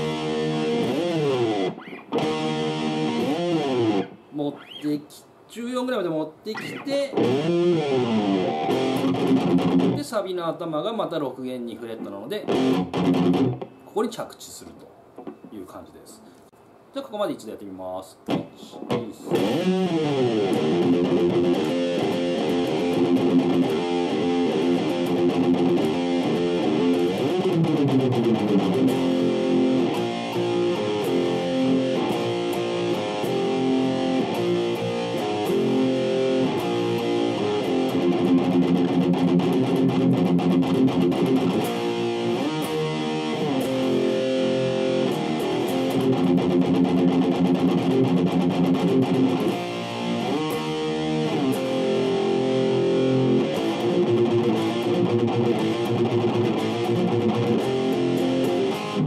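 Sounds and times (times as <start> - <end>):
electric guitar rock riff: 0.0 - 4.8, 6.5 - 10.1, 12.5 - 13.8, 18.3 - 59.0.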